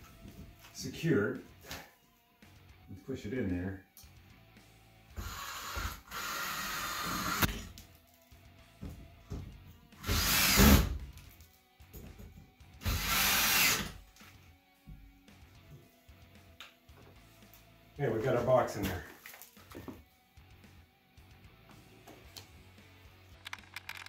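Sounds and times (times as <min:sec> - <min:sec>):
cordless drill driving screws: 0:05.2 - 0:07.6, 0:10.0 - 0:10.9, 0:12.8 - 0:13.9.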